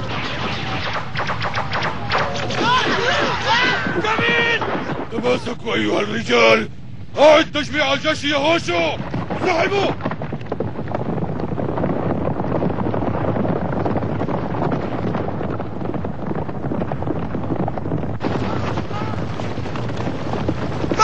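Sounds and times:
horses galloping: 0.8 - 6.4, 7.3 - 21.0
soldiers shouting: 2.5 - 6.7.

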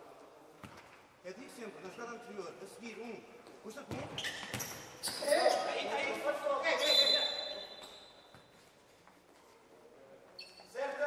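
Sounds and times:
ball and feet on court floor: 3.4 - 5.3.

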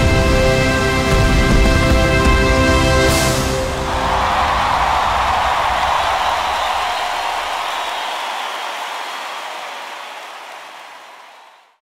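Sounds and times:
audience applauding: 3.8 - 11.8.

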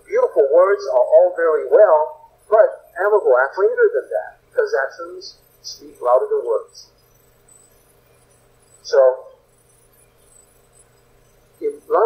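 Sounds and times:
faint room hum: 0.0 - 12.0.

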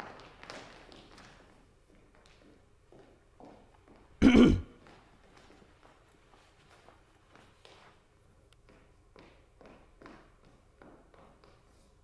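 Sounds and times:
person clearing throat: 4.2 - 4.8.

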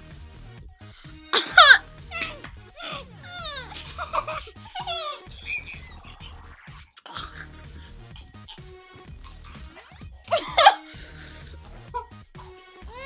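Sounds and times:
background music: 0.0 - 13.0
children squealing and crying: 1.3 - 7.6, 12.8 - 13.0.

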